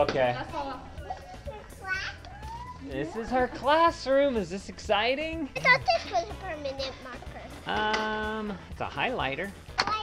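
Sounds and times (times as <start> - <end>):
child calling: 1.5 - 2.8.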